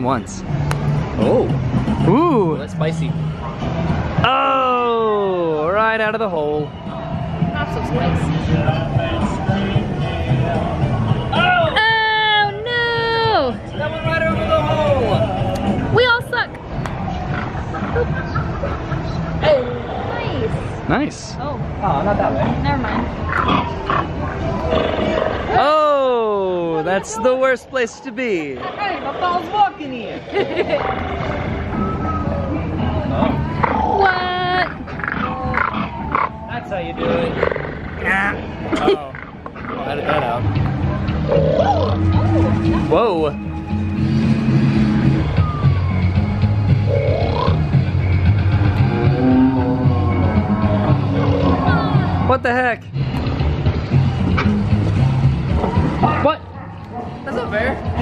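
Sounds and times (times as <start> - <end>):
background music: 0.0 - 58.0
crowd babble: 0.0 - 58.0
animal-like growling: 22.4 - 25.6, 33.1 - 38.4, 41.1 - 42.8, 46.8 - 47.9, 48.5 - 52.3.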